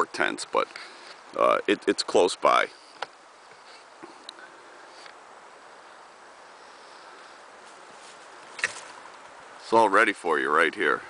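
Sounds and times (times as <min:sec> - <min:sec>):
steady soft hiss: 0:00.0 - 0:11.0.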